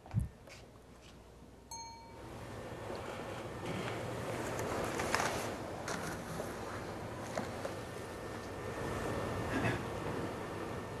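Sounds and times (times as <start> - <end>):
room noise hiss: 0.0 - 11.0
high bell-like ding: 1.7 - 2.2.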